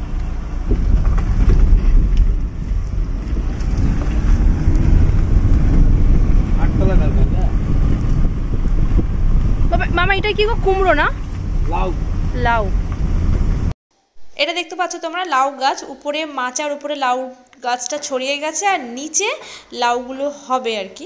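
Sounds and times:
wind buffeting microphone: 0.0 - 13.7.

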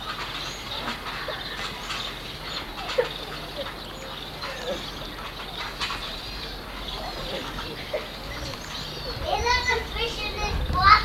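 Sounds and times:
children talking and calling out: 2.5 - 11.0.

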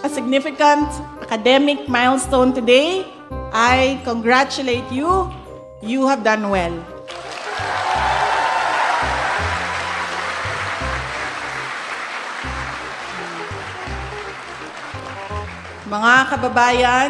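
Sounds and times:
background music with low beat: 0.8 - 5.8, 6.6 - 17.0
large audience applauding: 7.1 - 16.4.

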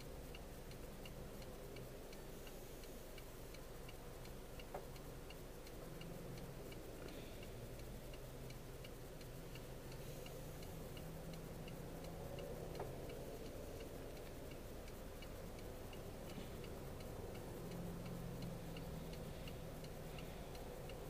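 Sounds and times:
car engine hum: 0.0 - 21.0
car turn signal ticking: 0.0 - 21.0.

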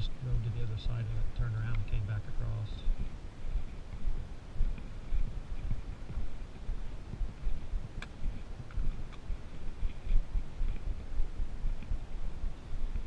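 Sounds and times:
footsteps on dirt trail: 0.3 - 13.0.

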